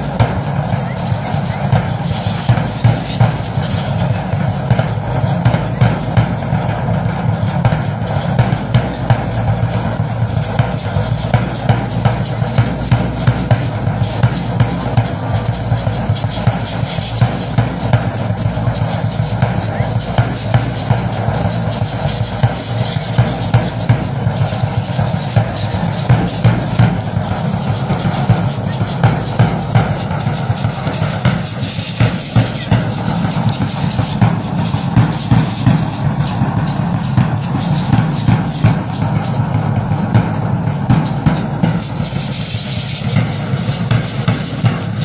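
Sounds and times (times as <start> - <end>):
steady drum beat: 0.0 - 45.0.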